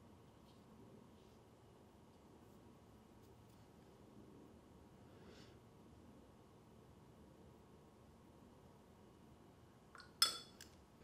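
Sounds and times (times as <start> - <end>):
paintbrush clinking on container: 10.0 - 10.8.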